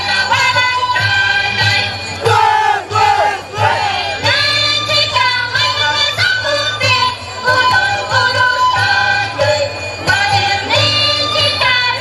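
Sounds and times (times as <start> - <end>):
group of voices shouting: 2.3 - 4.0.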